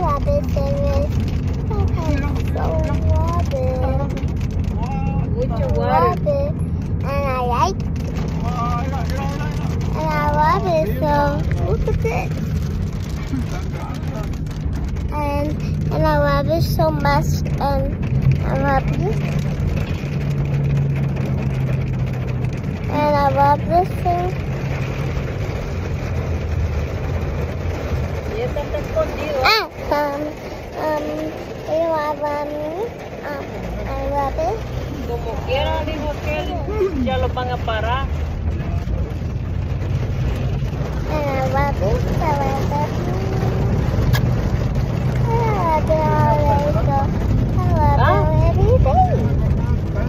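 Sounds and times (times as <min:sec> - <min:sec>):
child's voice: 0:00.0 - 0:04.3, 0:05.4 - 0:08.3, 0:09.8 - 0:12.4, 0:14.9 - 0:19.4, 0:22.8 - 0:24.4, 0:29.0 - 0:35.1, 0:40.9 - 0:43.9, 0:45.1 - 0:49.3
low rumble inside car cabin: 0:00.0 - 0:50.0
child making gliding wordless sounds: 0:22.9 - 0:24.4, 0:29.4 - 0:34.7, 0:41.1 - 0:43.7, 0:45.2 - 0:49.2.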